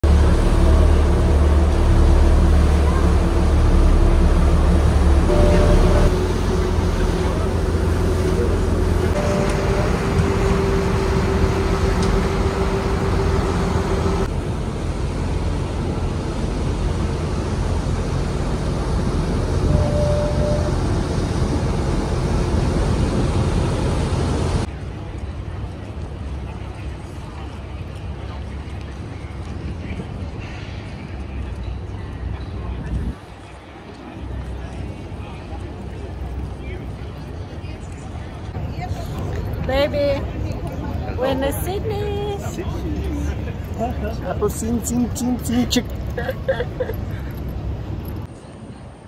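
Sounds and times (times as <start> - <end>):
boat engine rumble: 0.0 - 49.0
wind and water wash: 0.0 - 49.0.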